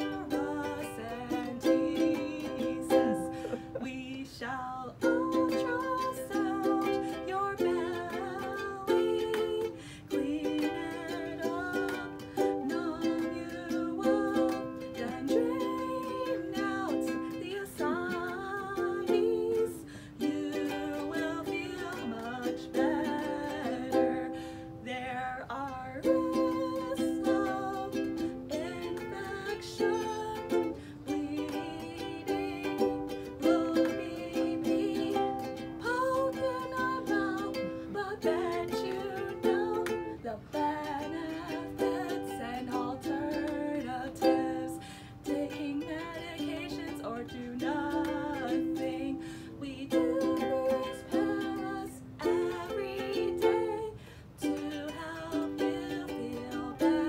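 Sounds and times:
ukulele strumming chords: 0.0 - 57.0
woman singing: 0.0 - 57.0.

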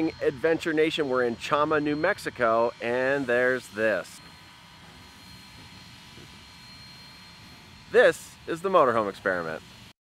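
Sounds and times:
distant steam locomotive rumble: 0.0 - 9.9.

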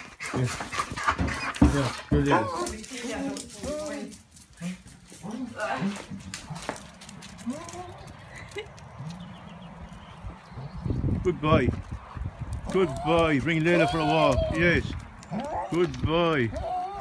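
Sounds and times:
dog vocal sounds: 16.5 - 17.0.

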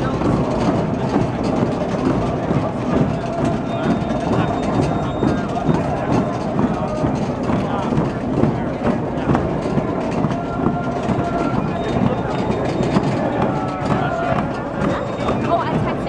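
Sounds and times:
crowd voices talking and calling: 0.0 - 16.0
scattered knocks: 0.0 - 16.0.

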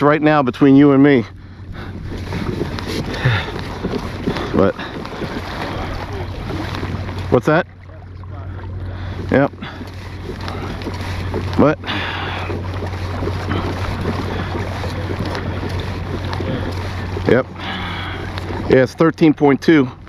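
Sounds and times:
wind and water hiss: 0.0 - 20.0.

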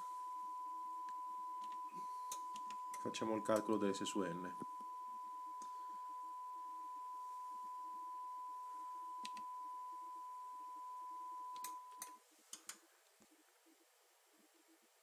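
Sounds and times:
steady test tone: 0.0 - 12.1
faint background hiss: 0.0 - 15.0.

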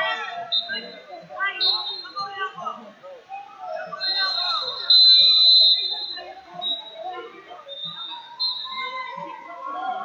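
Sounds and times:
referee's whistle blasts: 4.0 - 7.0, 7.7 - 9.0.

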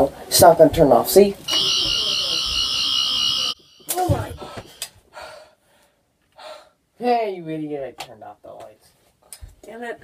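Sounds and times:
toy high electronic buzz: 1.5 - 4.0.

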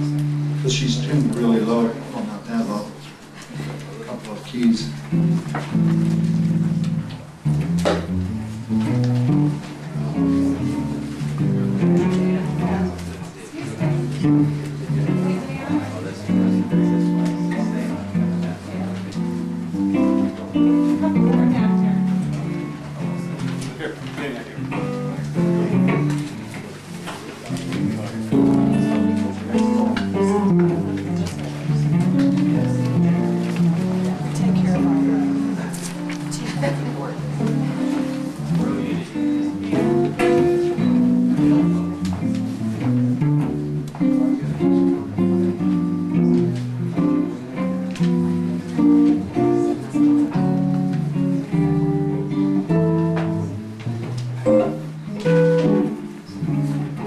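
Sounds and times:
fingerstyle guitar: 0.0 - 57.0.

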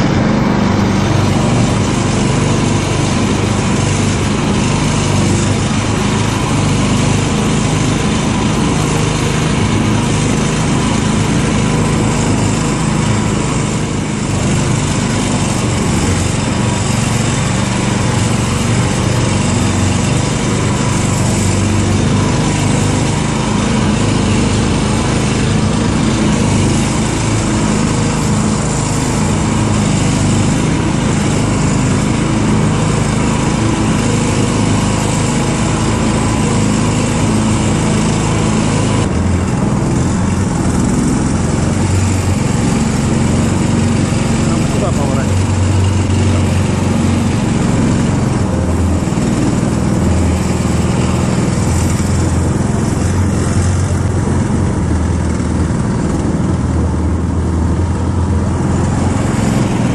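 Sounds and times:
small engine running: 0.0 - 59.9.

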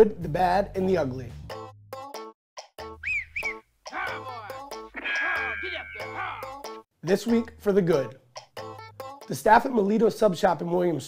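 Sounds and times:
whistle-like tones: 3.0 - 6.4.

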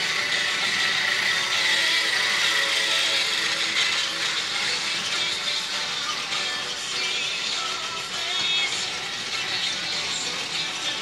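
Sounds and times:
pop song from a laptop: 0.0 - 11.0
toy train motor whirring: 0.0 - 11.0.

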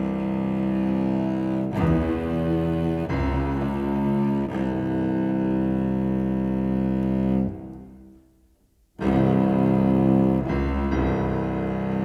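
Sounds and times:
cello bowed note: 9.0 - 12.0.

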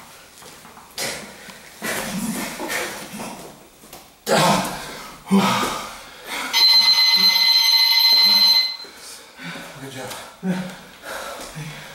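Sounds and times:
electronic timer buzzer: 6.5 - 8.9.

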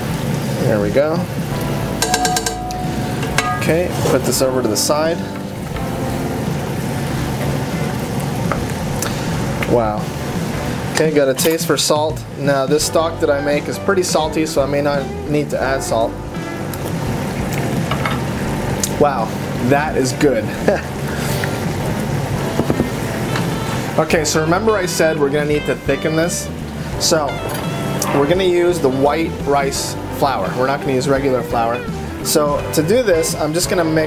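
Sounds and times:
exhaust fan humming: 0.0 - 34.0
background music: 0.7 - 34.0
sauce simmering in a pan: 2.9 - 11.0, 16.3 - 24.1, 26.1 - 28.1.

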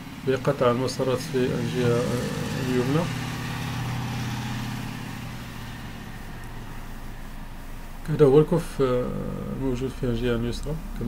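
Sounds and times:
low engine-like hum: 0.0 - 11.0.

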